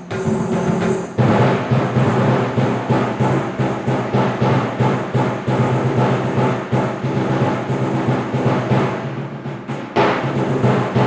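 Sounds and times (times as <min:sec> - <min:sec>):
low-pitched drums: 0:00.0 - 0:11.0.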